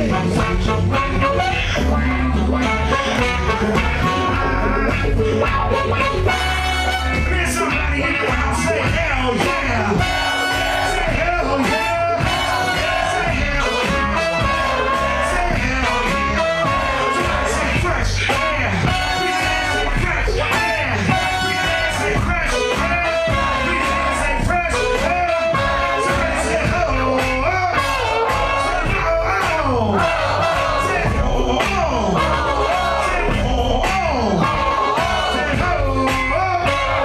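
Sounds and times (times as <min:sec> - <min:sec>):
drum beat: 0:00.0 - 0:37.0
live hip-hop band: 0:00.0 - 0:37.0
person singing into microphone: 0:07.1 - 0:37.0.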